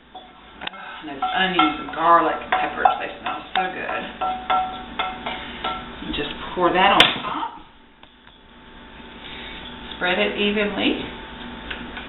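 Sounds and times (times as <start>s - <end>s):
woman speaking: 0.8s - 4.2s, 6.0s - 7.7s, 10.0s - 11.1s.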